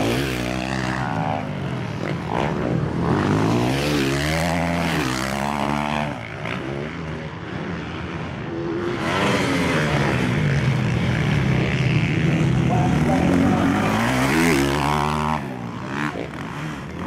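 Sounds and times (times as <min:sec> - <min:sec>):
motocross bikes revving: 0:00.0 - 0:17.0.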